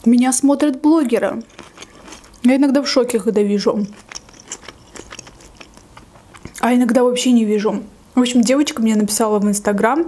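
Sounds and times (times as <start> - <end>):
wet chewing mouth clicks: 1.4 - 2.5, 3.8 - 6.6.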